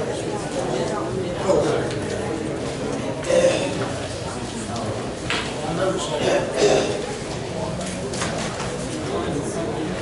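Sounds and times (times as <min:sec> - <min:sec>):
indistinct talking: 0:00.0 - 0:10.0.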